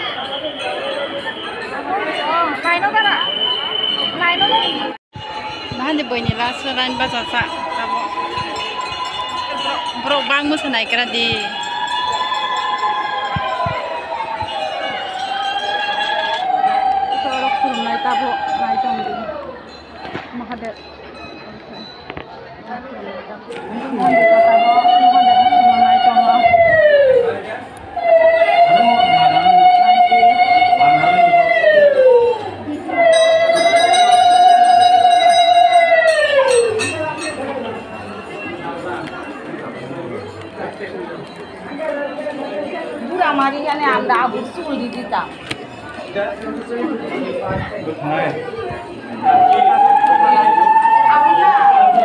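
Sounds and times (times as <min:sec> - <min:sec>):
crowd chatter: 0:00.0 - 0:52.0
conch shell blown: 0:24.0 - 0:27.0, 0:28.0 - 0:37.0.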